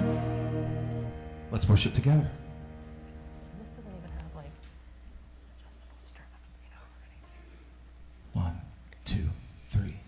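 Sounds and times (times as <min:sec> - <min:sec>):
low hum: 0:00.0 - 0:08.3
faint whispery voice: 0:05.4 - 0:07.5.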